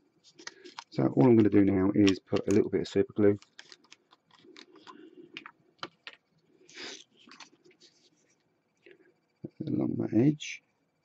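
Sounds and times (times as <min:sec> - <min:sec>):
faint clicks and taps of small items: 0:00.3 - 0:09.6.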